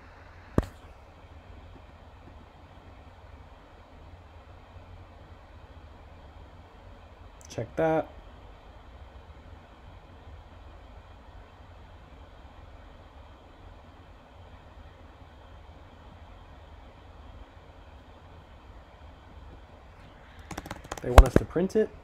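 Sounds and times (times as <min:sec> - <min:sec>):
faint room hum: 0:00.0 - 0:22.0
computer keyboard keystrokes: 0:20.4 - 0:21.5.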